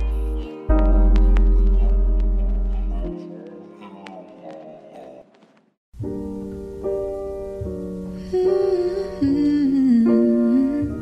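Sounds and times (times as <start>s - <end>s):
soft acoustic chords: 0.0s - 4.3s
hummed vocal melody: 8.2s - 11.0s.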